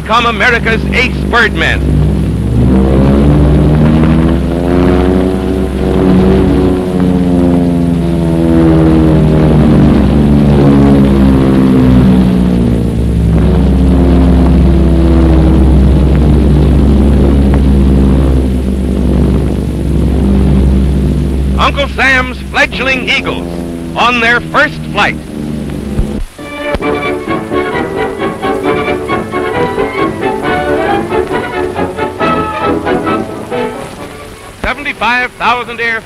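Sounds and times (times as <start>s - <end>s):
propeller biplanes droning: 0.0s - 36.0s.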